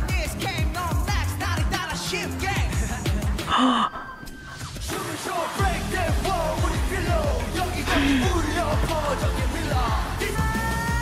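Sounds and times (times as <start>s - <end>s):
pop music: 0.0s - 11.0s
woman gasping: 3.4s - 4.2s, 7.9s - 8.4s.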